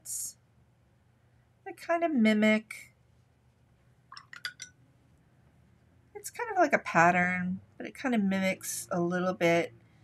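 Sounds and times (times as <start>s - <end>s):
light clicks and clinks: 4.1s - 4.8s.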